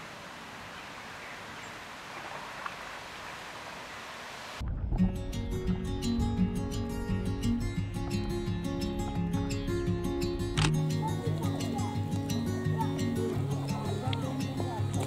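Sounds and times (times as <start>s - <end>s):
river rushing: 0.0s - 4.6s.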